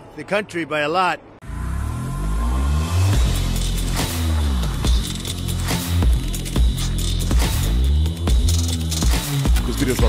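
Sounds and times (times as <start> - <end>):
deep bass rumble with falling tones: 1.4 - 8.7.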